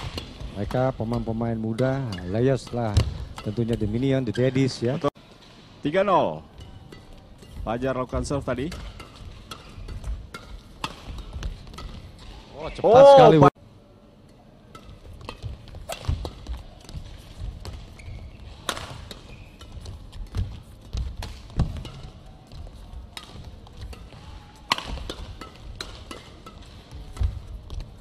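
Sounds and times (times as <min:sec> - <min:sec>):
racket striking shuttlecock: 0:00.0 - 0:03.6, 0:06.5 - 0:12.4, 0:14.7 - 0:22.2, 0:23.2 - 0:27.9.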